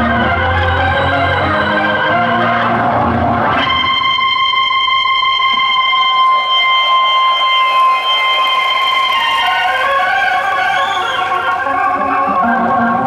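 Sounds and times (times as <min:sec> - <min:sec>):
electric organ notes: 0:00.0 - 0:13.0.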